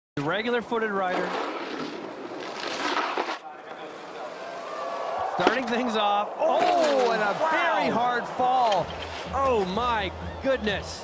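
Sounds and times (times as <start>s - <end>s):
snowboard edge scraping snow: 1.1s - 3.4s, 6.5s - 7.9s.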